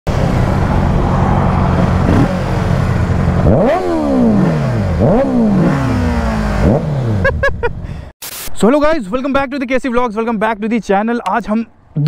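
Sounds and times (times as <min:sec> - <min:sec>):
motorcycle engines droning: 0:00.1 - 0:07.5
road and wind rush: 0:00.1 - 0:12.0.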